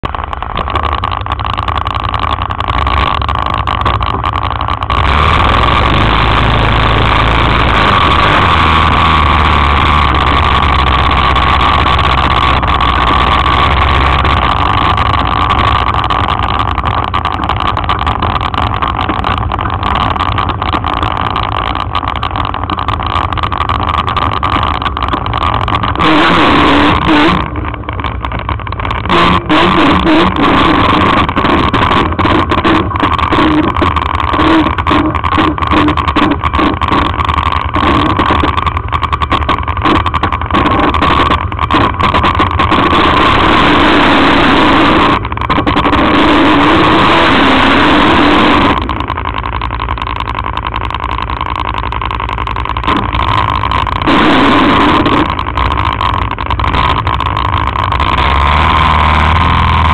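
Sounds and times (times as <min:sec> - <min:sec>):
quad engine running: 0:00.0 - 0:59.9.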